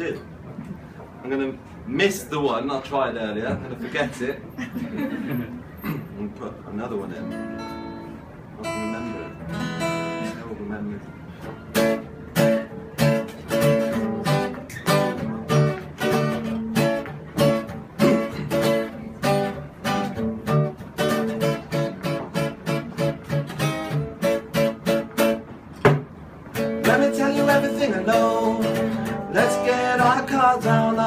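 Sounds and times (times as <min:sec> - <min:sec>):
acoustic guitar strumming: 0:07.0 - 0:31.0.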